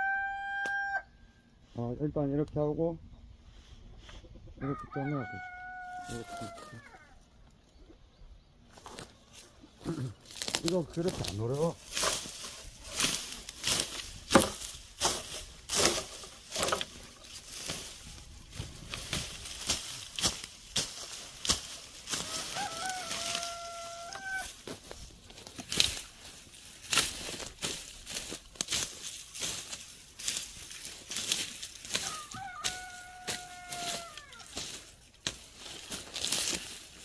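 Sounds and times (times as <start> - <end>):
rooster crowing: 0.0 - 1.4, 4.6 - 7.2, 22.1 - 24.6, 31.9 - 34.5
knocks and scrapes in soil: 1.7 - 4.5, 5.4 - 37.0.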